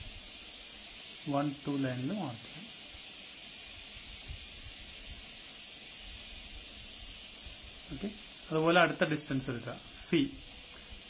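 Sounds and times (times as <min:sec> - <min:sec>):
steady background hiss: 0:00.0 - 0:11.0.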